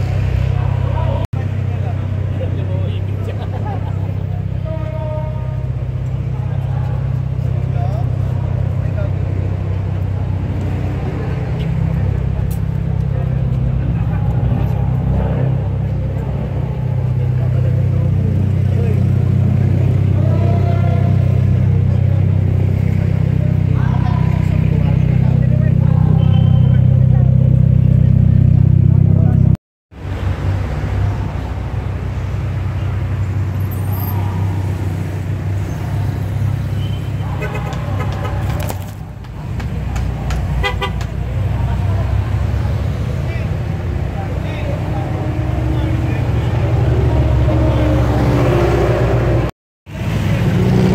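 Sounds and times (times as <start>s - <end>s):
people talking: 0.5s - 29.6s, 37.1s - 48.0s.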